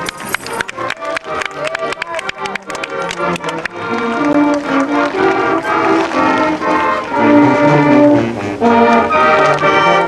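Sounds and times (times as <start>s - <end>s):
marching band brass: 0.0s - 10.0s.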